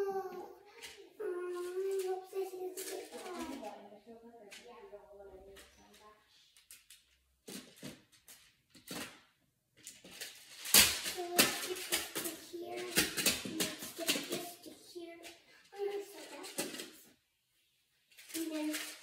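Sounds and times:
child's voice: 0.0s - 6.4s, 11.1s - 17.1s, 18.3s - 19.0s
plastic building tiles clicking: 5.4s - 17.0s, 18.1s - 19.0s.

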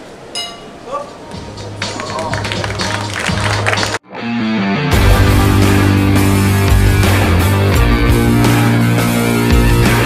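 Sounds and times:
boxing bell ringing: 0.4s - 0.8s
music with steady bass line: 1.4s - 10.0s.

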